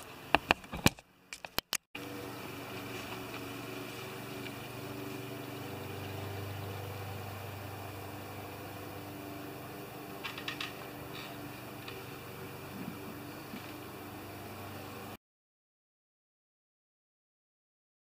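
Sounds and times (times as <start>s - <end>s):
low motor hum: 2.0s - 15.2s.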